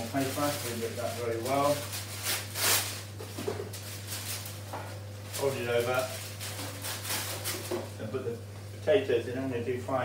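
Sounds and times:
baking paper crinkling: 0.0s - 8.1s
steady low hum: 0.0s - 10.0s.

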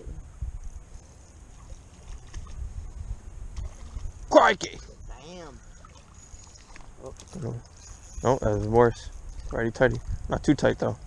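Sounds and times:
wind rumble on microphone: 0.0s - 5.7s, 6.7s - 11.0s.

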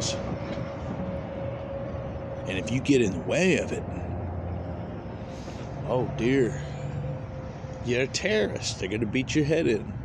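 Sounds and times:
vehicle rumble: 0.0s - 10.0s.

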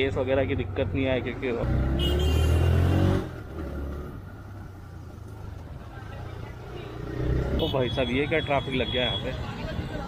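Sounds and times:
road and traffic noise: 0.0s - 10.0s.

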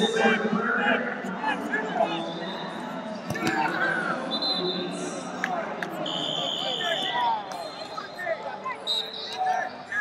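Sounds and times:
high whistle: 6.0s - 8.0s.

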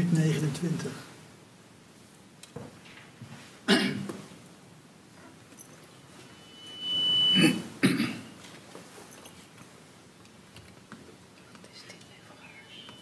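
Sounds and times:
person clearing throat: 3.7s - 4.1s, 7.4s - 8.3s
person coughing: 3.7s - 4.1s, 7.4s - 8.3s
steady high tone: 5.9s - 8.4s.

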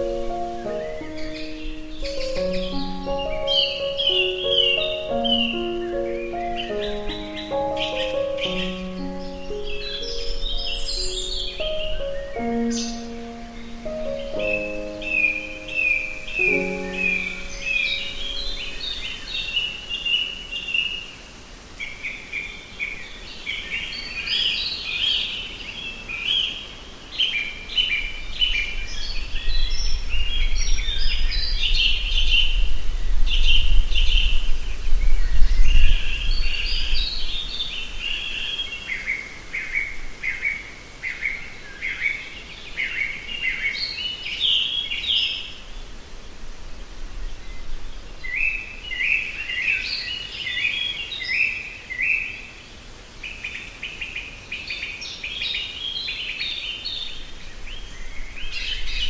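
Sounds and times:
songbirds chirping and trilling: 0.0s - 59.0s.

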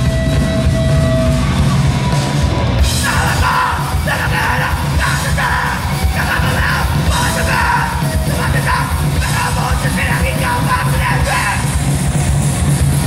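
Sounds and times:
punk band playing live: 0.0s - 13.0s
shouted lead vocal: 2.0s - 11.9s.

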